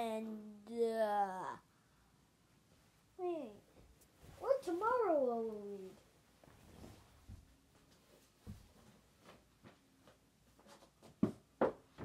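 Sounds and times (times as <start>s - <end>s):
child's wordless vocal sound: 0.0s - 1.8s.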